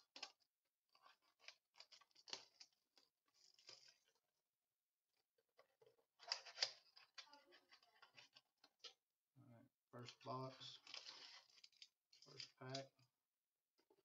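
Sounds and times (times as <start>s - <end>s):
plastic shrink-wrap crinkling: 10.6s - 12.5s.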